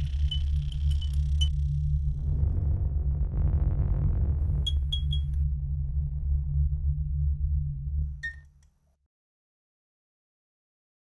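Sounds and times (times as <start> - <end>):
deep low drone: 0.0 - 8.6.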